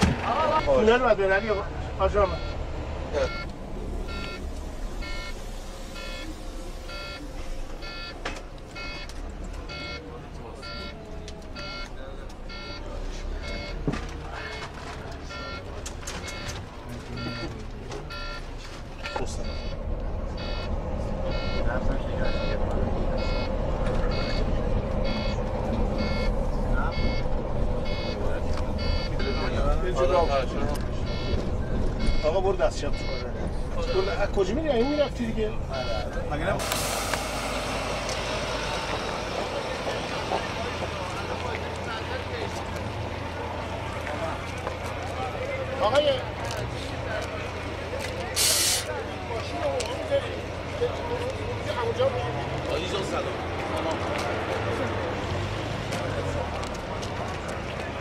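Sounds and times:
bus engine rumble: 0:00.0 - 0:58.0
electronic warning beeps: 0:00.5 - 0:01.6, 0:02.3 - 0:02.6, 0:03.2 - 0:03.5, 0:04.1 - 0:08.2, 0:08.8 - 0:11.0, 0:11.6 - 0:11.9, 0:12.5 - 0:13.8, 0:15.3 - 0:16.6, 0:17.2 - 0:17.5, 0:18.1 - 0:19.8, 0:20.4 - 0:22.6, 0:23.2 - 0:25.4, 0:26.0 - 0:28.2, 0:28.8 - 0:30.5, 0:31.1 - 0:31.4, 0:32.0 - 0:34.2, 0:35.7 - 0:36.1.

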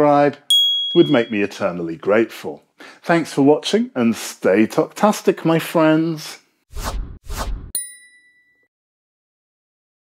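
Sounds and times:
bright chime ding: 0:00.5 - 0:01.4, 0:07.8 - 0:08.7
quick whooshes: 0:06.7 - 0:07.7.

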